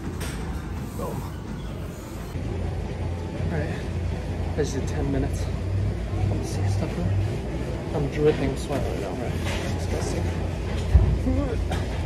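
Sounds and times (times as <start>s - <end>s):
cardio machines rumbling: 0.0s - 12.0s.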